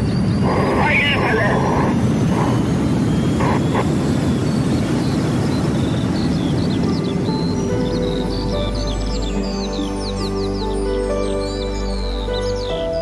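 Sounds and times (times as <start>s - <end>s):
sustained musical tones: 0.0s - 13.0s.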